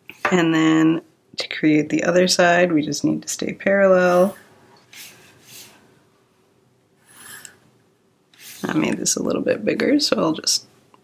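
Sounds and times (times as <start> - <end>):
pencil drawing along ruler on paper: 4.1 - 5.8, 7.0 - 7.6, 8.4 - 8.9.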